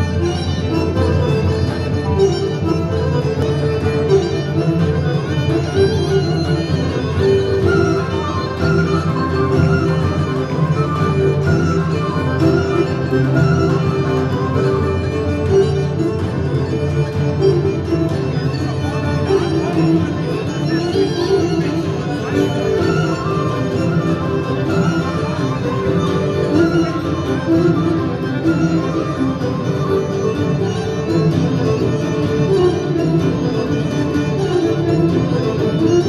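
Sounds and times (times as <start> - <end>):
live folk band playing: 0.0 - 36.0.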